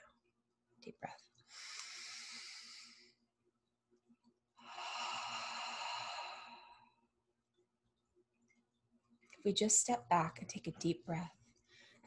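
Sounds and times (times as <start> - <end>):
woman breathing in deeply: 1.5 - 3.2, 4.6 - 7.0, 11.6 - 12.0.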